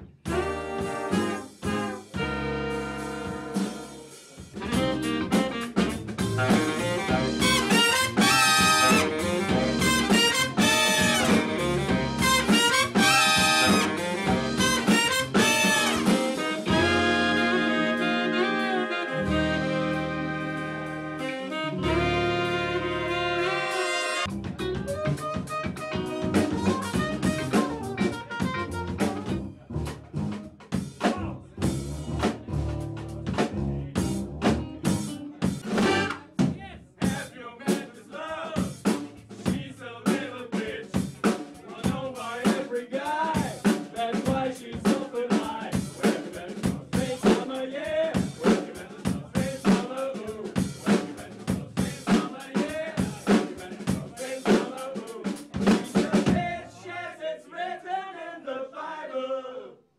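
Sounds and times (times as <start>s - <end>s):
jazz band playing: 0.0s - 36.5s, 45.8s - 56.5s
drum kit hits: 3.2s - 17.0s, 24.3s - 37.8s
deep bass: 4.6s - 17.7s, 19.2s - 23.5s, 24.3s - 36.1s.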